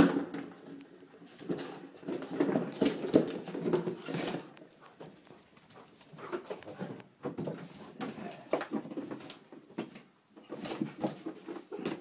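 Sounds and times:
scraping and rustling: 0.2s - 12.0s.

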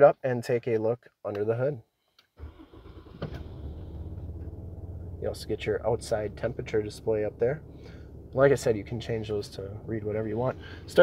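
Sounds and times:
diesel engine starting and idling: 2.4s - 11.0s.

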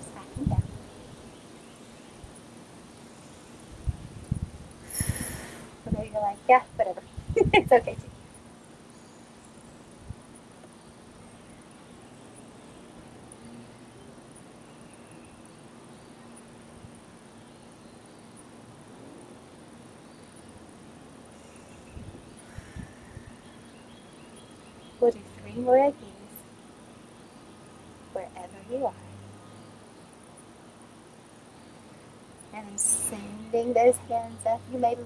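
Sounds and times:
high-pitched insect trill: 4.8s - 5.7s.

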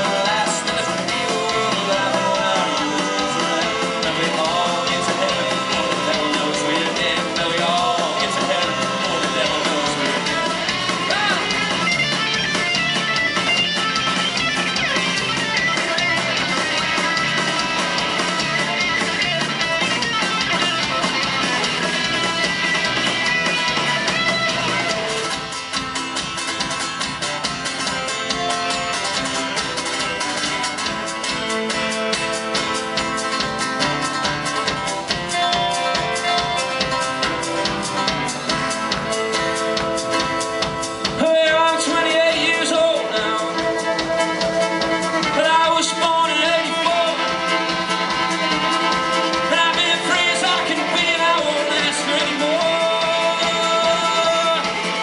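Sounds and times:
country band playing: 0.0s - 55.0s
bowed fiddle: 42.1s - 51.8s.

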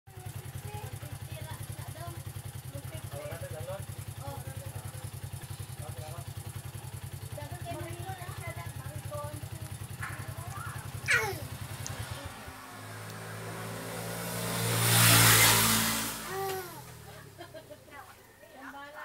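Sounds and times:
small engine running: 0.1s - 18.2s
faint voices: 7.2s - 12.6s.

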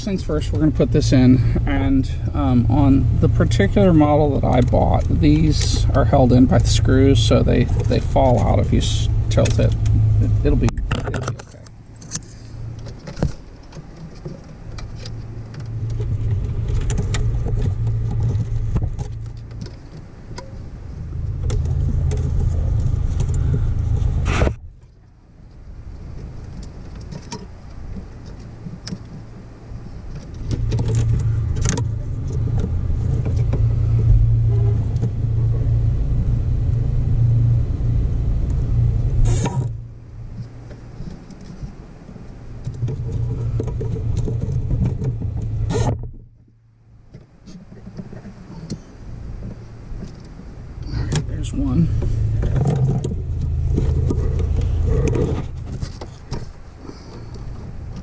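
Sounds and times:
low rumble: 0.0s - 13.6s, 14.5s - 47.1s, 48.0s - 58.0s.

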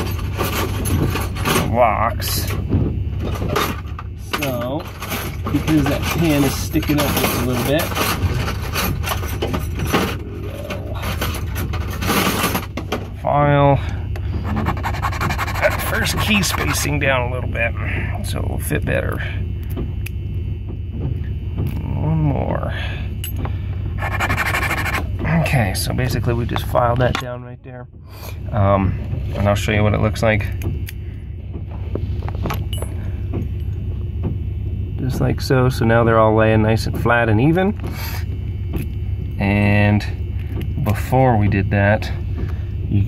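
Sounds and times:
steady low hum: 0.0s - 43.0s
hand file rasping on a key: 14.4s - 16.9s, 24.0s - 25.0s.

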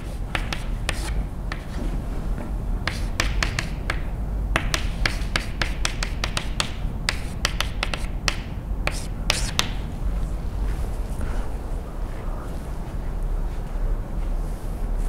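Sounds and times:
chalk writing on blackboard: 0.0s - 1.8s, 2.8s - 9.8s.

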